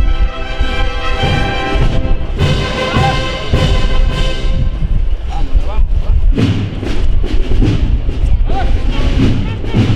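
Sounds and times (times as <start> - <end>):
processional band music: 0.0 - 5.4, 6.3 - 9.9
crowd voices: 0.0 - 9.9
heavy drum beats: 0.1 - 9.9.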